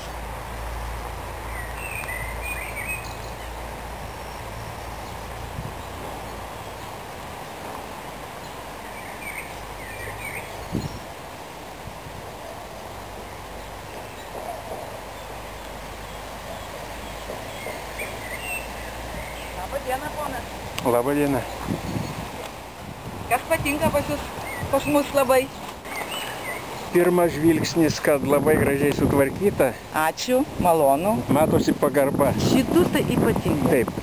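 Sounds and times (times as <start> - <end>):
outdoor background noise: 0.0 - 34.0
bird chirps: 1.5 - 5.2, 13.6 - 20.0, 24.4 - 27.0.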